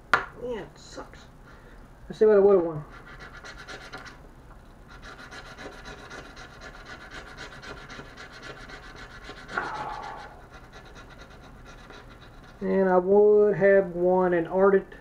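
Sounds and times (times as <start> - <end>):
scratch card being scratched: 3.0 - 4.2, 4.9 - 12.6.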